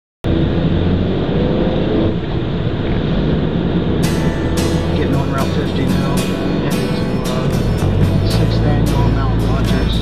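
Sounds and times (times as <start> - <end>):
car cabin road and engine noise: 0.2 - 10.0.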